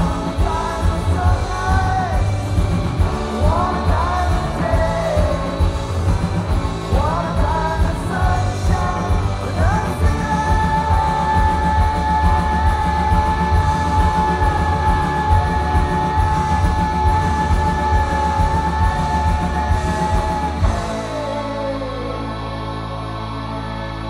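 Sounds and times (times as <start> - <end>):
live rock band playing: 0.0 - 24.0.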